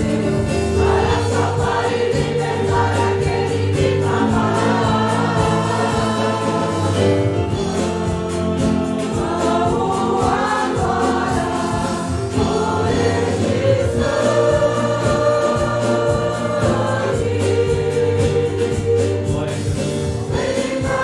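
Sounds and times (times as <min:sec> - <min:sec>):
group singing a hymn: 0:00.0 - 0:21.0
instrumental accompaniment with beat: 0:00.0 - 0:21.0.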